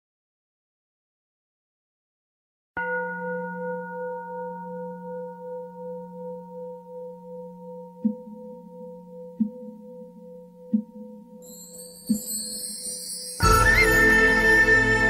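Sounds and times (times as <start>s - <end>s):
bell ringing: 8.6s - 15.0s.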